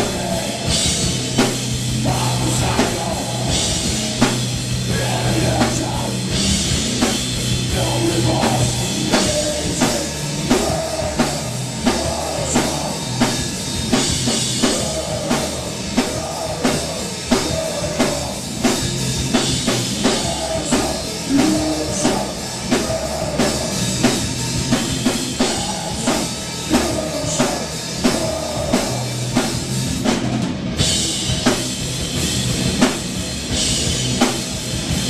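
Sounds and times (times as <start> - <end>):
distorted electric guitars: 0.0 - 35.0
drum kit: 0.0 - 35.0.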